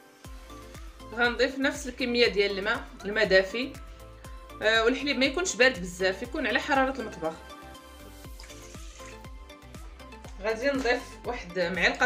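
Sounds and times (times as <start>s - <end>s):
soft background music with beat: 0.0s - 12.0s
water pouring into bowl: 8.1s - 9.5s
liquid splashing: 8.2s - 9.4s.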